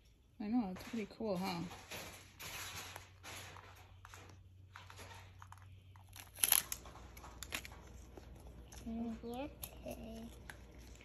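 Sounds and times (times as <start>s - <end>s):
plastic packaging crinkling and tearing: 2.4s - 11.0s.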